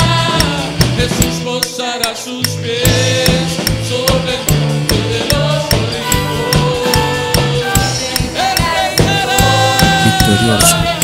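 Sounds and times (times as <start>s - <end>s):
electric bass: 0.0s - 1.7s, 2.5s - 11.0s
drum kit beat: 0.0s - 11.0s
keyboard: 0.0s - 11.0s
man singing long notes: 9.6s - 11.0s.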